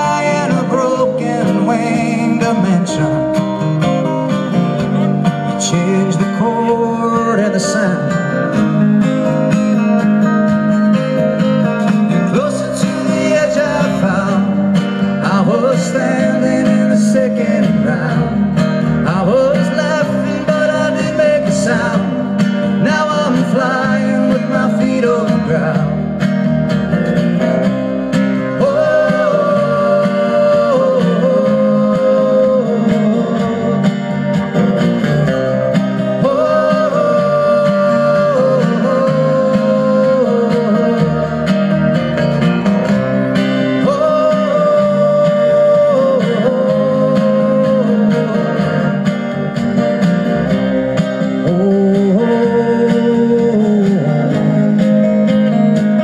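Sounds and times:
acoustic guitars strummed: 0:00.0 - 0:56.0
drums: 0:00.0 - 0:56.0
upright bass: 0:00.0 - 0:56.0.

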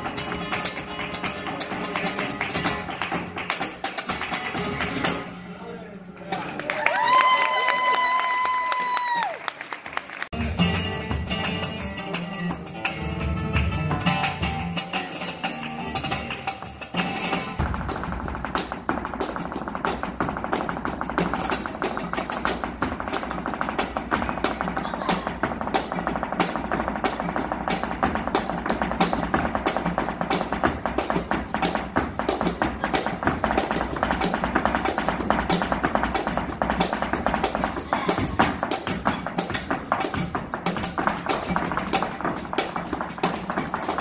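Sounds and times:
flamenco guitar: 0:00.0 - 0:09.4, 0:10.3 - 0:44.0
heel and toe strikes on stage: 0:16.9 - 0:44.0.

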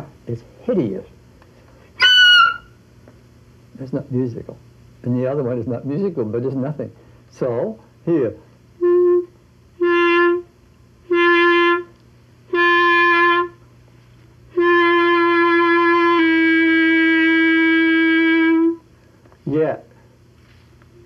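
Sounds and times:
clarinet notes: 0:02.0 - 0:02.7, 0:08.8 - 0:13.6, 0:14.5 - 0:18.8.

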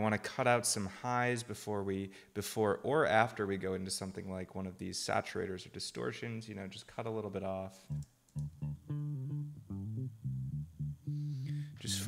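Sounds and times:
filtered synth bass line: 0:07.9 - 0:12.0.

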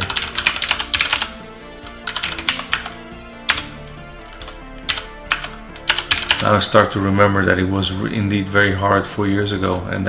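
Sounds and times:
computer keyboard typing: 0:00.0 - 0:06.6
soft background music: 0:00.0 - 0:10.0.

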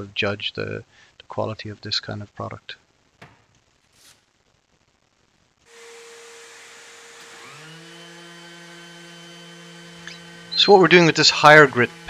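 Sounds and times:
orbital sander whirring: 0:05.7 - 0:12.0.

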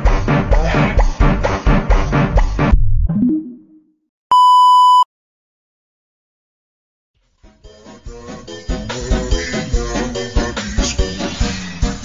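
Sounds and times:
electronic beep: 0:04.3 - 0:05.1.

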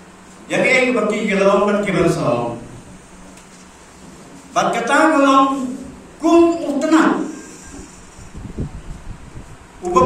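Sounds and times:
low room noise: 0:00.0 - 0:10.0
man speaking into a microphone: 0:00.5 - 0:02.8, 0:04.5 - 0:07.6.

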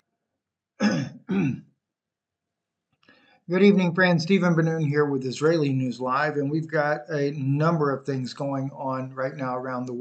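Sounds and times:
man clearing his throat: 0:00.8 - 0:01.6.

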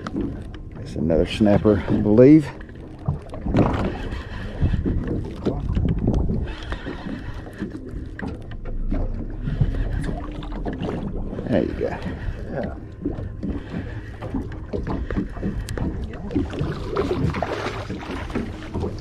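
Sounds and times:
wind and water rumble: 0:00.0 - 0:19.0.

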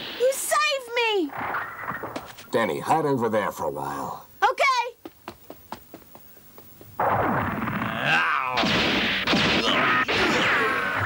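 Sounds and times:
cartoon crashes and impacts: 0:07.0 - 0:11.0.

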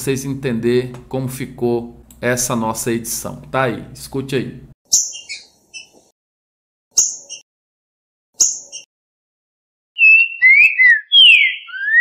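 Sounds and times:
bird whistled song phrase: 0:10.0 - 0:12.0.

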